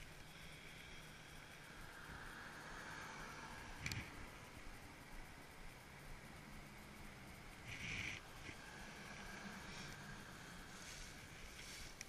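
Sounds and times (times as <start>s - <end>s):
car passing by: 1.2s - 12.0s.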